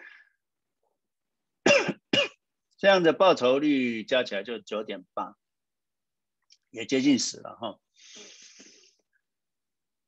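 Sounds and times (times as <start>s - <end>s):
man clearing throat: 1.6s - 2.4s
man talking: 6.7s - 7.9s.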